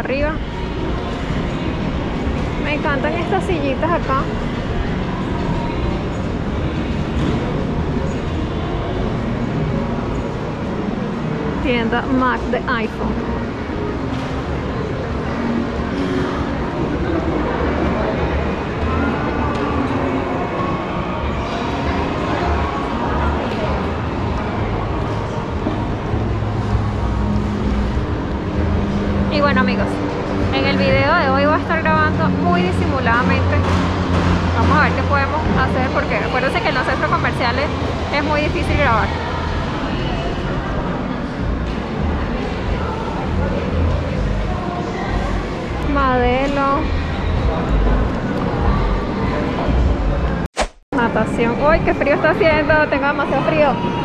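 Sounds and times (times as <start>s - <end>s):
faint voices of passers-by: 0.0s - 54.0s
shopping mall din: 0.0s - 54.0s.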